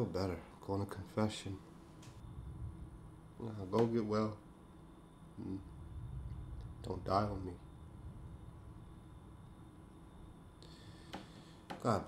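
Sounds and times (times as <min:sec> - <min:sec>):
faint low rumbling: 0:00.0 - 0:12.0.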